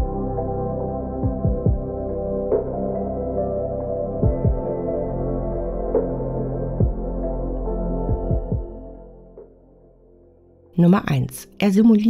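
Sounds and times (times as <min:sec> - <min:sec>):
sustained ambient music chord: 0:00.0 - 0:11.2.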